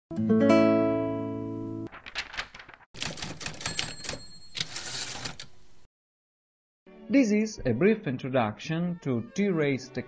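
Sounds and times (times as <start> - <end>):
typewriter key clatter: 2.0 - 5.5.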